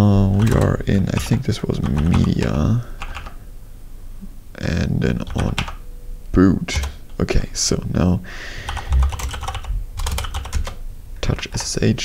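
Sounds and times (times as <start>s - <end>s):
keyboard typing clicks: 0.4s - 3.4s, 5.2s - 5.8s, 8.7s - 10.8s.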